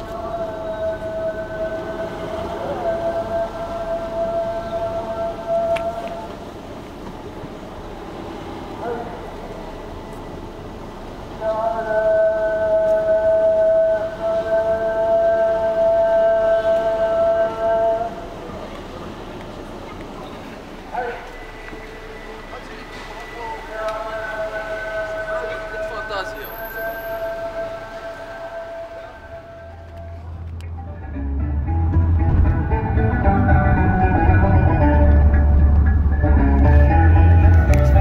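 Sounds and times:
call to prayer sung: 0.0 - 31.2.

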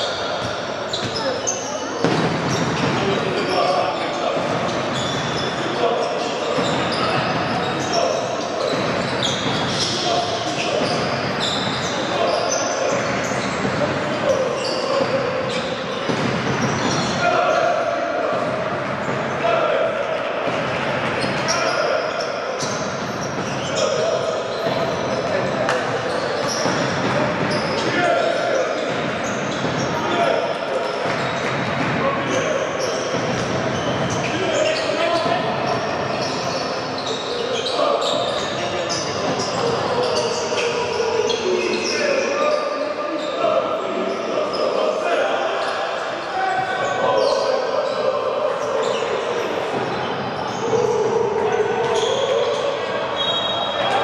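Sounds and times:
murmur of voices: 0.0 - 54.0
sneakers squeaking: 0.0 - 54.0.

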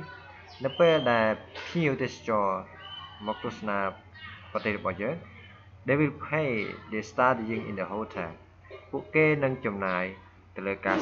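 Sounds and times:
person speaking: 0.0 - 11.0.

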